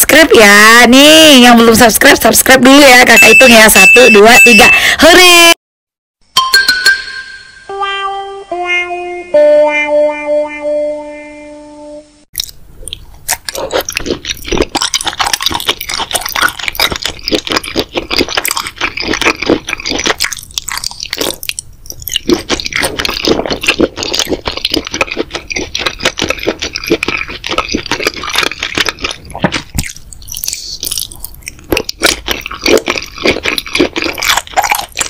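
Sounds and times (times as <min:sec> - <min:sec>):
person chewing noodles: 0:12.4 - 0:35.0.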